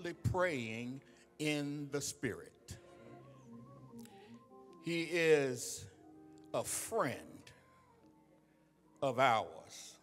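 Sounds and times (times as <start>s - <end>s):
faint church keyboard notes: 0.0s - 10.0s.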